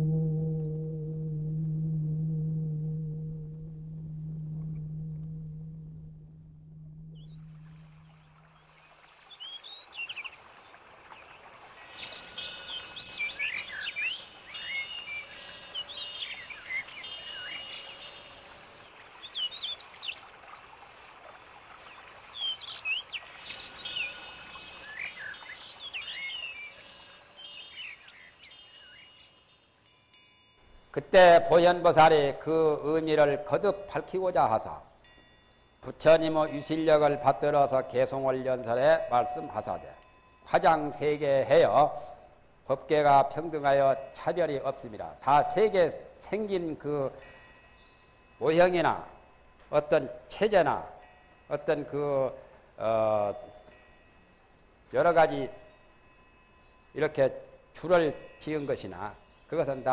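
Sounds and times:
low horn-like tone: 0.0s - 8.8s
soft background hiss: 0.0s - 59.9s
birds chirping and singing: 11.2s - 20.4s, 21.8s - 29.6s.

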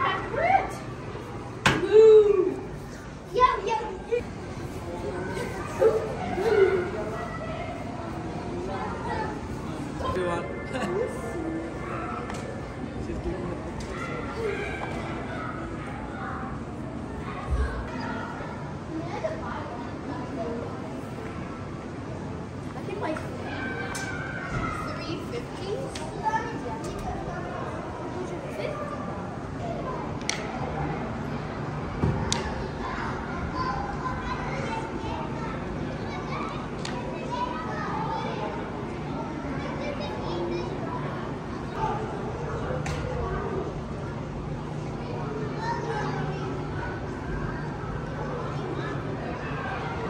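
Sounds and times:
children and adults chattering: 0.0s - 50.0s.

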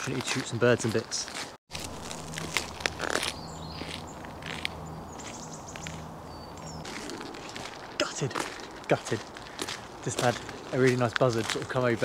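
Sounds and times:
footsteps crunching on gravel: 0.0s - 12.0s
faint birds chirping: 1.9s - 11.1s.

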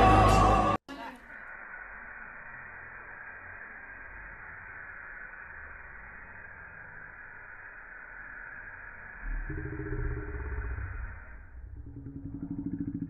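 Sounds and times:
faint hiss: 0.9s - 9.2s
low hum: 1.4s - 13.0s.

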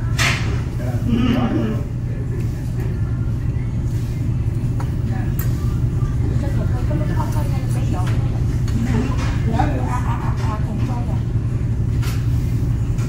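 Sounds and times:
background chatter of diners: 0.0s - 13.0s
low room hum: 0.0s - 13.0s.

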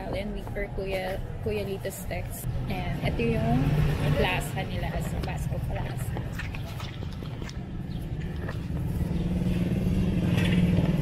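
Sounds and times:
small motorcycle engine passing: 8.5s - 11.0s.

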